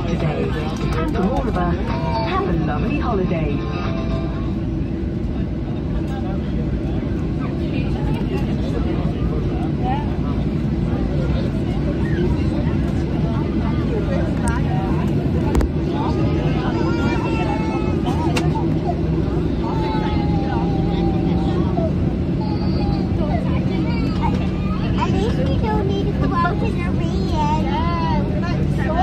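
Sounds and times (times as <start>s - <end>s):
jet engine rumble: 0.0s - 29.0s
passengers chatting: 0.0s - 29.0s.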